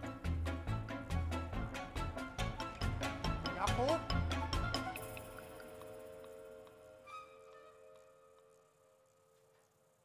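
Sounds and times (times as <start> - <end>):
quiet film score music: 0.0 - 10.0.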